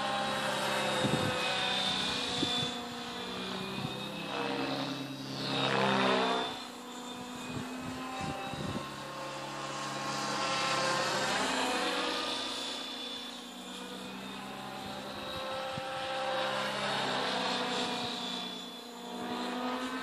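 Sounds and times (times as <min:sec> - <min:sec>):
model helicopter rotor whine: 0:00.0 - 0:20.0.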